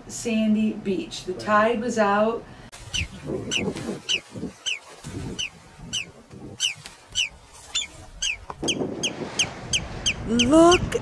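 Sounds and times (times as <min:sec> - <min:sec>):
wind buffeting the microphone: 0:02.7 - 0:11.0
bird calling: 0:02.8 - 0:11.0.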